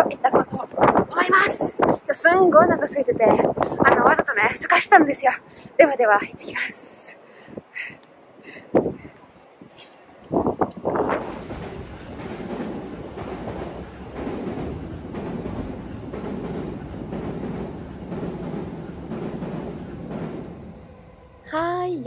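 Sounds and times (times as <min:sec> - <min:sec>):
train rumbling over viaduct: 0:00.0 - 0:22.0.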